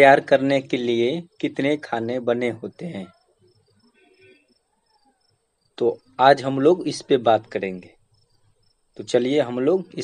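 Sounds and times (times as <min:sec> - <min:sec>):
man speaking: 0:00.0 - 0:03.2, 0:05.8 - 0:08.0, 0:09.0 - 0:10.0
faint insect chirping: 0:00.0 - 0:10.0.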